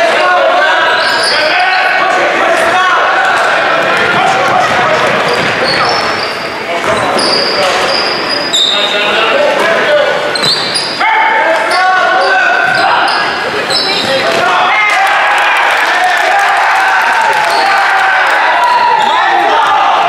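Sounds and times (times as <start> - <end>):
voices in gym: 0.0 - 20.0
sneakers squeaking: 0.8 - 2.0, 3.2 - 14.7, 18.6 - 19.5
basketball bouncing on court: 3.9 - 6.2.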